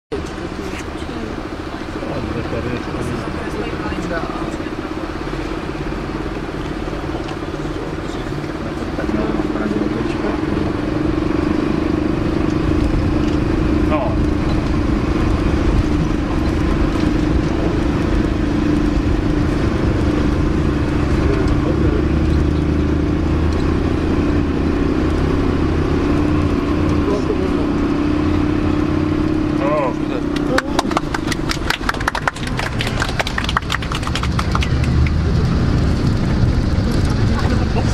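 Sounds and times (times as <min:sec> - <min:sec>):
bus engine droning under load: 0:00.1 - 0:37.9.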